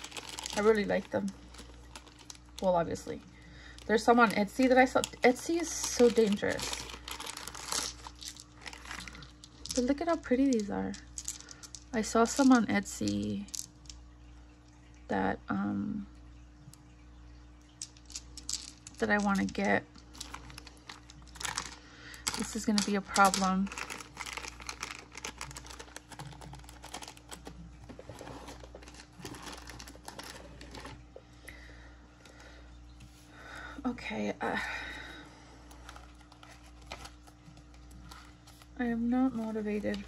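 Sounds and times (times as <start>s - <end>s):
plastic bag crinkling: 0.0s - 12.6s, 17.9s - 31.2s, 35.7s - 40.0s.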